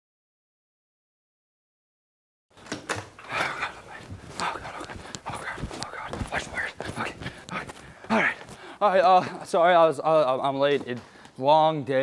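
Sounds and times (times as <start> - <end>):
person breathing hard: 3.2 - 8.9.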